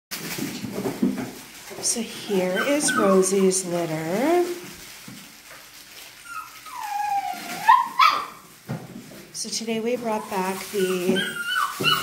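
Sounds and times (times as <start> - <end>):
puppy whining: 2.1 - 3.8, 6.2 - 8.4, 10.0 - 12.0
puppy yelp: 2.2 - 3.6, 6.2 - 8.4, 10.1 - 12.0.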